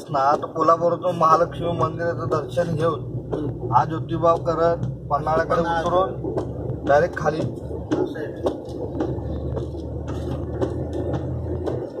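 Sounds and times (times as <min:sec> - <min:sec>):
car engine drone: 0:00.0 - 0:12.0
regular mechanical tick: 0:00.0 - 0:12.0.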